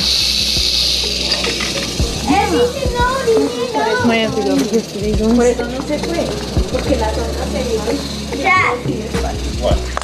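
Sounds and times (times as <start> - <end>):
rattlesnake rattling: 0.0 - 10.0.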